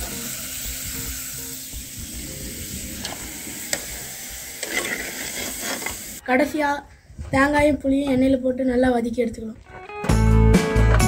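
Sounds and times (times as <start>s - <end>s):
stems sizzling in a clay pot: 0.0s - 6.3s
metal spoon stirring: 4.6s - 6.1s.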